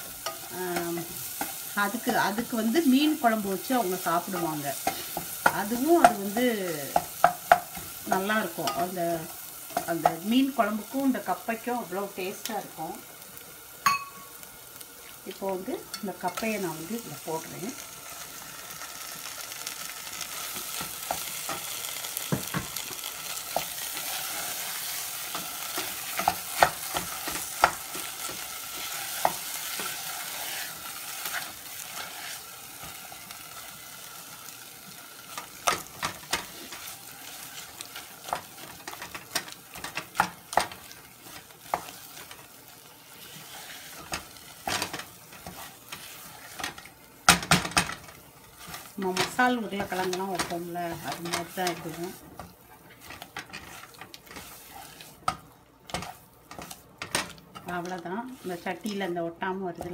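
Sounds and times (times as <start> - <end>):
food sizzling in hot oil: 0.0 - 59.9
spatula scraping a pan: 3.7 - 6.3, 17.8 - 34.6, 35.2 - 47.0, 47.7 - 59.2.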